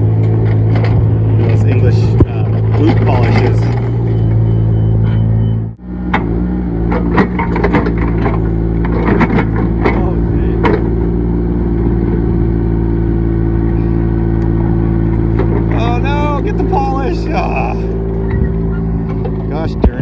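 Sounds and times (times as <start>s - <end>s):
excavator engine running: 0.0s - 20.0s
bucket knocks and clanks: 6.9s - 10.9s.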